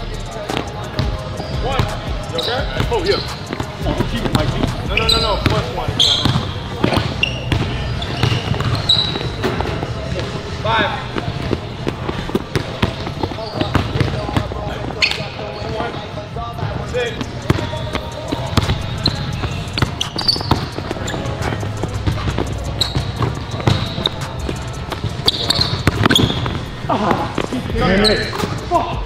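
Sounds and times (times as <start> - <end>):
shoes squeaking on floor: 0.5 - 29.0
basketballs bouncing on hardwood: 2.7 - 10.3, 11.1 - 14.6, 17.2 - 27.2.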